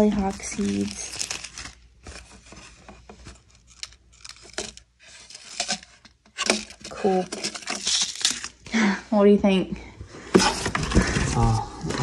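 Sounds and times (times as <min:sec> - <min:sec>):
plastic and paper bags crinkling: 0:00.0 - 0:08.8.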